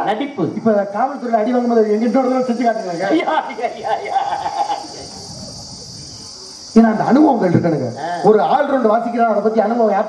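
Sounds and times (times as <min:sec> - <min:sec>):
crickets chirring: 0:00.0 - 0:10.0.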